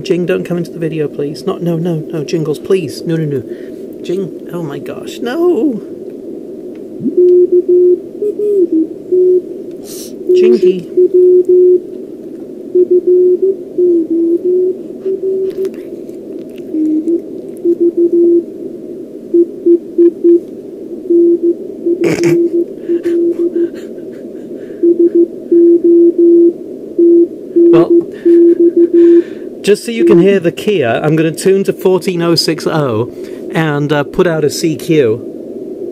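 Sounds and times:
receiver hiss: 0:00.0 - 0:35.9
morse code tone: 0:07.0 - 0:09.5, 0:10.3 - 0:11.8, 0:12.8 - 0:15.7, 0:16.7 - 0:18.4, 0:19.4 - 0:20.4, 0:21.1 - 0:23.7, 0:24.8 - 0:29.3, 0:30.0 - 0:30.4.

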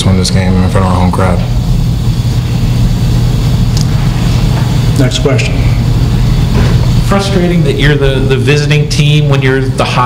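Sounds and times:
loud low hum: 0:00.0 - 0:10.0.

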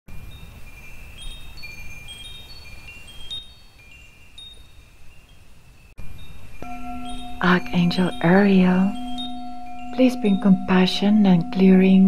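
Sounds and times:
wind chimes tinkling: 0:00.1 - 0:12.0.

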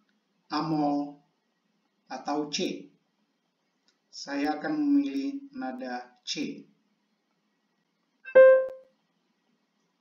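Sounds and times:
sampled piano note: 0:08.3 - 0:08.8.

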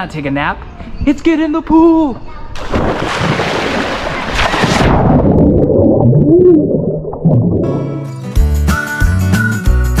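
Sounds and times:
splash into pool: 0:02.6 - 0:06.2
underwater bubbles churning: 0:04.2 - 0:08.0.

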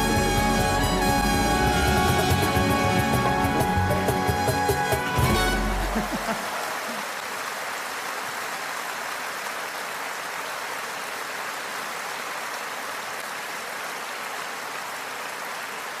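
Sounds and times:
audience applauding: 0:00.0 - 0:16.0.

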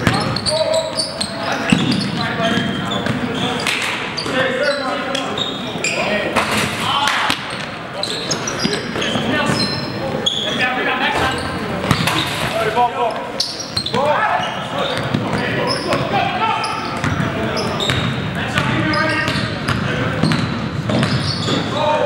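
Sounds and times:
sneakers squeaking: 0:00.0 - 0:22.0
players shouting: 0:13.8 - 0:19.3
basketball bouncing on hardwood: 0:17.9 - 0:21.2.

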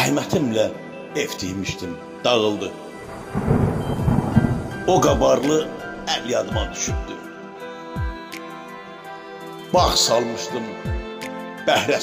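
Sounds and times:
soft background music: 0:00.0 - 0:12.0
thunder rumbling: 0:02.9 - 0:07.3
rain hiss: 0:03.0 - 0:06.3.

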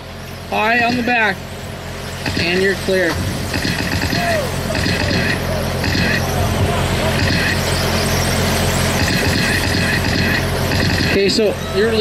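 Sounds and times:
steady low hum: 0:00.0 - 0:12.0
electric motors whining: 0:01.8 - 0:12.0.

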